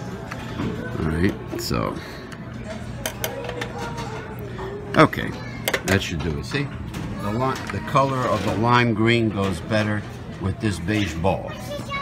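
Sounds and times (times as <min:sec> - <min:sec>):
dishes and utensils clinking: 0:02.3 - 0:11.4.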